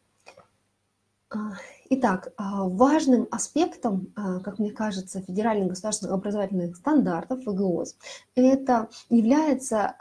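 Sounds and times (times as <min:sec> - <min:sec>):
woman speaking: 0:01.3 - 0:10.0.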